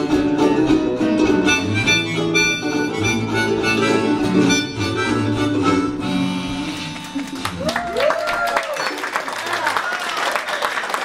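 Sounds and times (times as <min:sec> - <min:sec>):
harmonica: 0:00.0 - 0:07.2
strummed acoustic guitar: 0:00.0 - 0:07.6.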